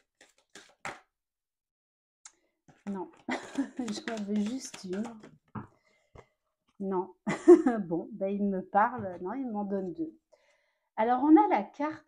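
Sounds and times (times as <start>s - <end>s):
card deck being shuffled: 0.0s - 1.1s, 2.7s - 6.3s.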